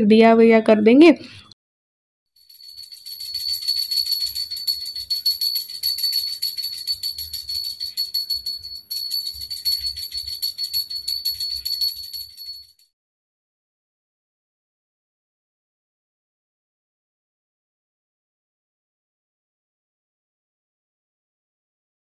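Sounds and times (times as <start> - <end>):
hand bell ringing rapidly: 2.4 - 12.8.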